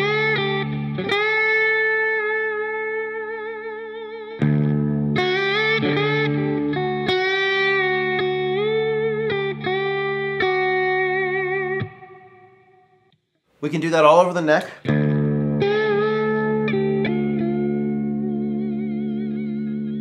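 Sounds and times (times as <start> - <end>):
electric slide guitar melody: 0.0 - 13.0, 14.8 - 20.0.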